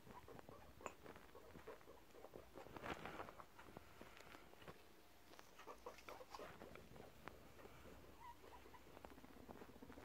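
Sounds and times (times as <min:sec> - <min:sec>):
guinea pig squeaks: 0:00.0 - 0:03.5, 0:04.6 - 0:10.0
guinea pig rumble: 0:00.0 - 0:10.0.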